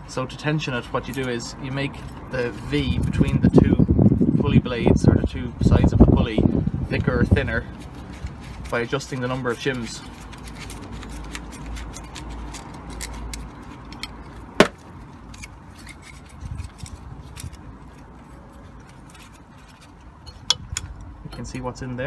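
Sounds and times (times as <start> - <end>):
metal parts clinking: 10.4 - 18.0.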